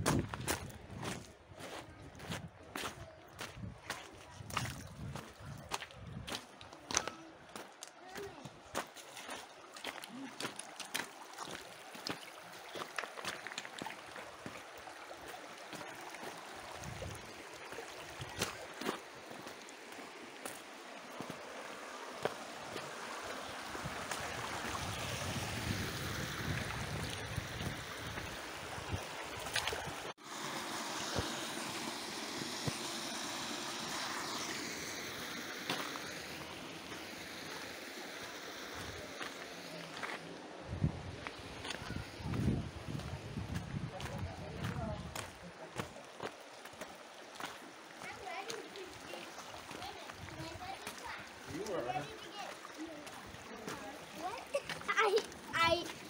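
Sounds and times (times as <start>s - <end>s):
creek running over stones: 0.0s - 56.0s.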